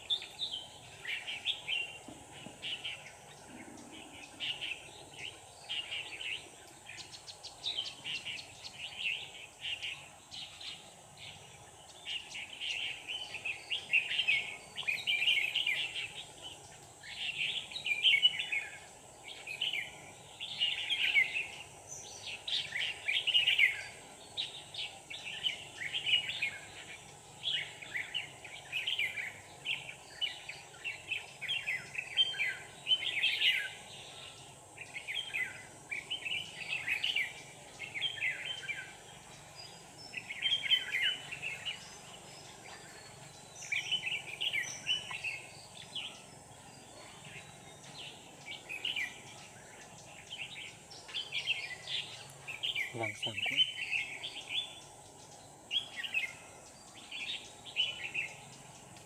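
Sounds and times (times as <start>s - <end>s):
birds singing warbled phrases: 0.0s - 59.0s.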